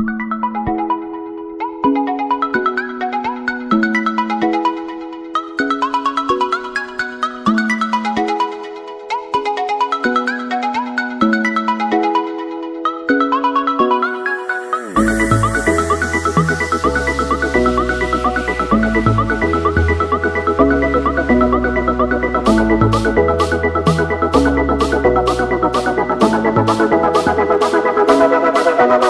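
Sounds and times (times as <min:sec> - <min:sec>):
electronic ringtone-like melody: 0:13.8 - 0:18.4.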